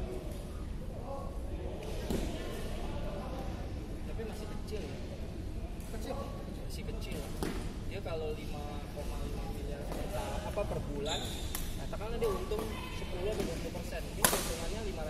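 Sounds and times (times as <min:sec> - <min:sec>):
people talking: 0:08.0 - 0:15.0
rackets hitting shuttlecock: 0:14.2 - 0:14.6.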